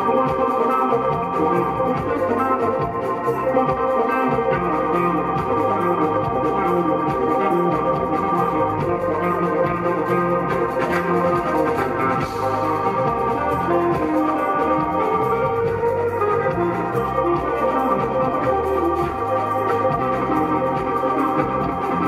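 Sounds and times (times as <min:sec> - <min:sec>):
electric bass line: 0:00.0 - 0:22.0
organ chords: 0:00.0 - 0:22.0.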